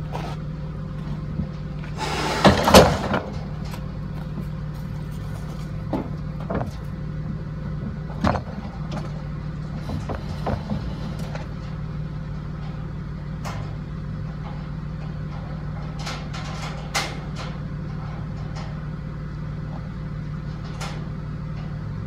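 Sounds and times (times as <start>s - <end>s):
vehicle engine idling: 0.0s - 22.0s.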